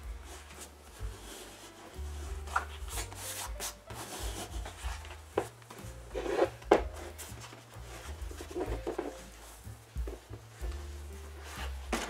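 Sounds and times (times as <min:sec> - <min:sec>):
hands scuffing vinyl: 0:00.0 - 0:12.0.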